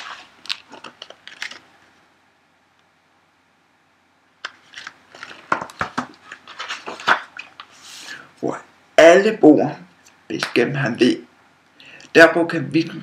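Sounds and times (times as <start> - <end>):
paper rustling and crinkling: 0.0 - 1.7, 4.4 - 8.1
light paper knocks: 4.7 - 7.7.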